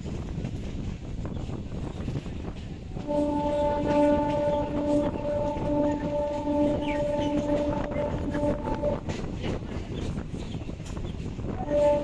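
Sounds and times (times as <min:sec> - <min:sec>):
moving train rumble: 0:00.0 - 0:12.0
train horn long blast: 0:02.9 - 0:09.5, 0:11.5 - 0:12.0.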